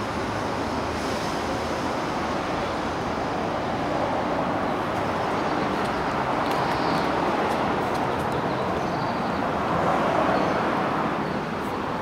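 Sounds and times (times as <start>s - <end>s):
city traffic hum: 0.0s - 12.0s.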